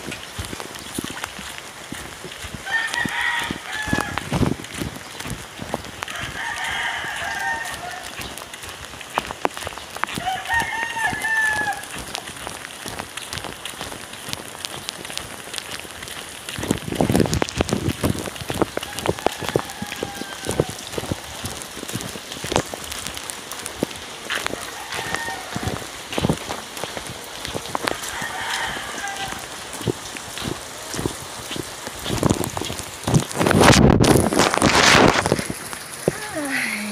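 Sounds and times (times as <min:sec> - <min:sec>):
rain hissing: 0:00.0 - 0:36.9
rooster crowing: 0:02.7 - 0:04.2, 0:06.1 - 0:08.1, 0:10.2 - 0:11.9, 0:18.9 - 0:20.8, 0:24.6 - 0:25.9, 0:27.9 - 0:29.5.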